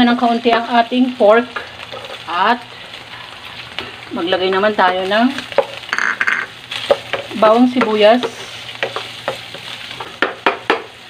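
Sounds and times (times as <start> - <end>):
meat sizzling in a frying pan: 0.0 - 11.0
utensil knocking against pan: 5.5 - 10.9.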